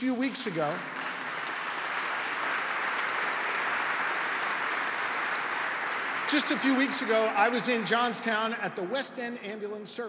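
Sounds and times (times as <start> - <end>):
audience applauding: 0.0 - 9.0.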